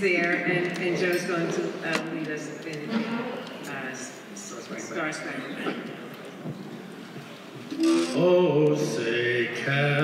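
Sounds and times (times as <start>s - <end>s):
man singing unaccompanied: 7.8s - 10.0s.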